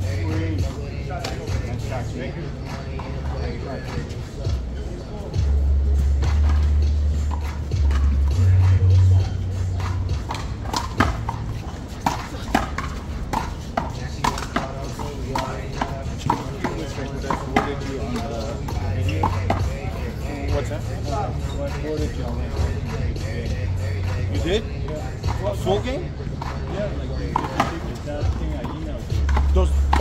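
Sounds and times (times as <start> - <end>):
handball slapping hand and wall: 10.3 - 18.2.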